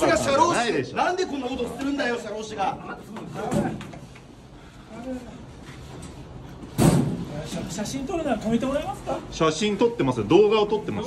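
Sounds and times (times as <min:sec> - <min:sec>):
loud thump against wall: 0:06.8 - 0:07.3.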